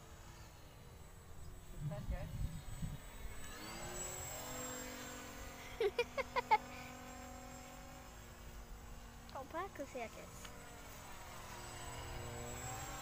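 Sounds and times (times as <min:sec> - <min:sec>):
model glider motor droning: 0:00.0 - 0:13.0.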